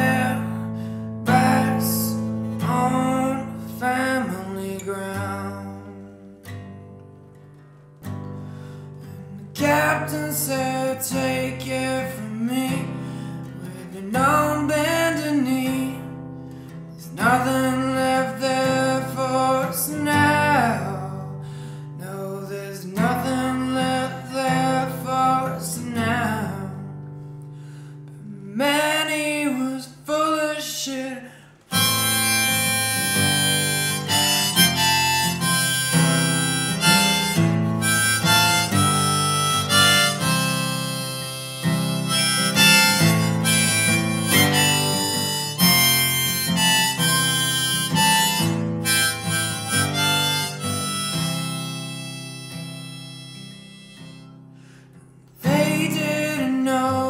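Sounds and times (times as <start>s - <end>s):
harmonica playing: 0.0s - 3.6s, 31.7s - 54.6s
strummed acoustic guitar: 0.0s - 57.0s.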